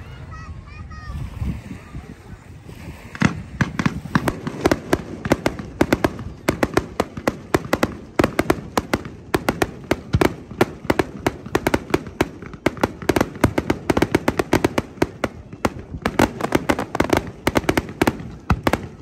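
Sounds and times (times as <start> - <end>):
firework firing sharp pops: 3.0 - 19.0.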